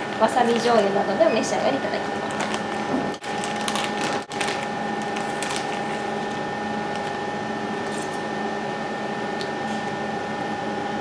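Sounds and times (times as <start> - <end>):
plastic bag crinkling: 0.0 - 1.0, 2.0 - 7.2
electrical hum: 0.0 - 11.0.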